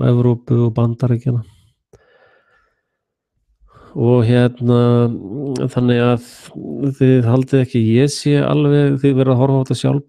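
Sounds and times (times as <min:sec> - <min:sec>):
faint breathing: 0:01.4 - 0:04.0
person speaking: 0:03.8 - 0:10.0.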